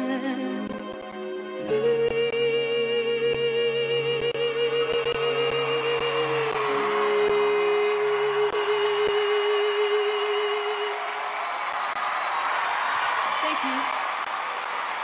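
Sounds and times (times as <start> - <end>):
boy singing a ballad: 0.0 - 11.0
string backing track: 0.0 - 11.1
audience cheering and applause: 4.8 - 15.0.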